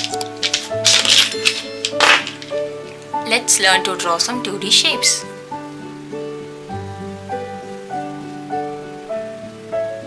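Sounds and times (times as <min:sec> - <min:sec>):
plastic marker pens clattering: 0:00.0 - 0:02.7
background music: 0:00.0 - 0:10.0.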